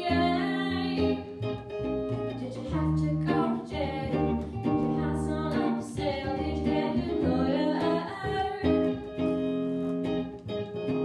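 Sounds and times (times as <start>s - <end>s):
girl singing into microphone: 0.0s - 1.5s, 2.3s - 9.7s
electric guitar: 0.0s - 11.0s
plucked double bass: 0.0s - 11.0s.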